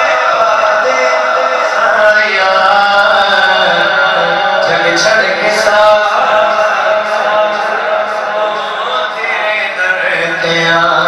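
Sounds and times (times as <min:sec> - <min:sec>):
man singing devotional chant: 0:00.0 - 0:11.0.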